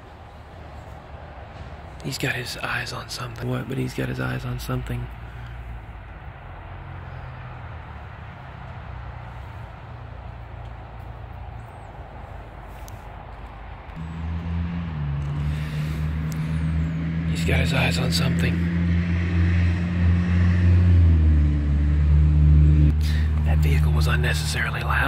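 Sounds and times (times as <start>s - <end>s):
hum of road traffic: 0.0s - 25.0s
vehicle engine drone approaching: 0.0s - 25.0s.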